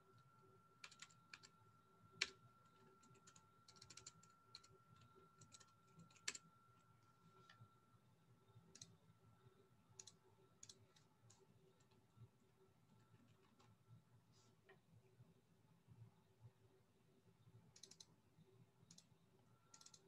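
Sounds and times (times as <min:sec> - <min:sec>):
computer keyboard typing: 0:00.8 - 0:06.5, 0:08.6 - 0:09.0, 0:10.0 - 0:12.0, 0:17.7 - 0:18.2, 0:18.8 - 0:20.0.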